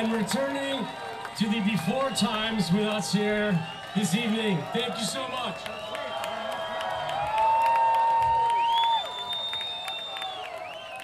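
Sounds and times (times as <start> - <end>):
crowd cheering and clapping: 0.0 - 11.0
loud whoop: 4.8 - 11.0
shrill whistle: 5.2 - 7.1, 8.4 - 11.0.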